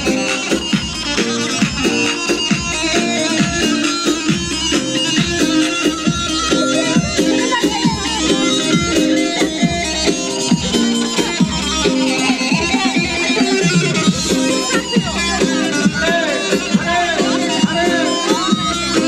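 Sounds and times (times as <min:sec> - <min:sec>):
steady beat: 0:00.0 - 0:19.0.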